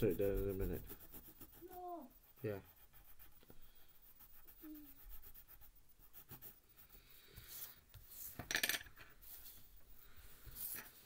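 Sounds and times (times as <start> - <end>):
pencil scratching on paper: 0.0 - 8.4.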